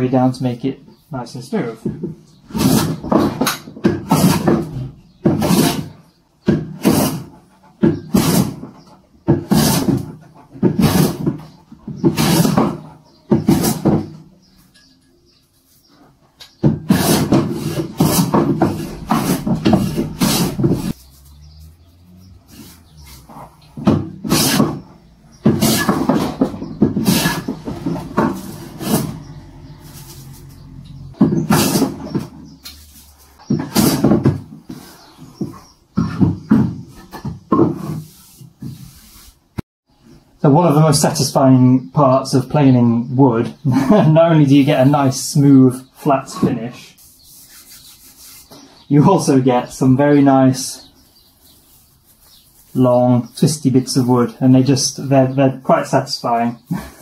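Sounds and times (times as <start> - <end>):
hand plane shaving wood: 2.5 - 14.0, 16.6 - 36.2, 47.0 - 48.8.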